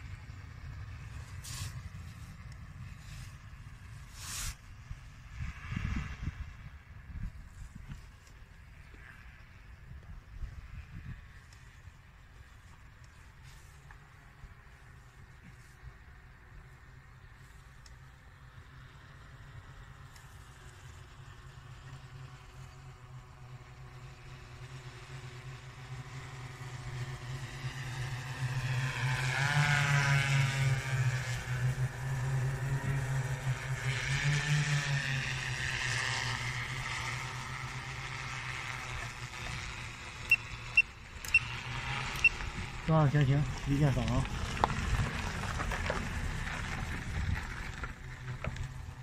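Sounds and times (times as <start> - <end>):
drone propellers droning: 0.0 - 49.0.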